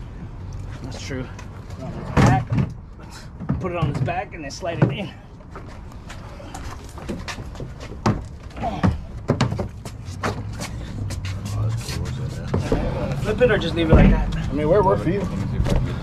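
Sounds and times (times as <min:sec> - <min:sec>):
furniture knocking and scraping: 0:02.0 - 0:02.8, 0:07.0 - 0:11.2, 0:13.8 - 0:14.4.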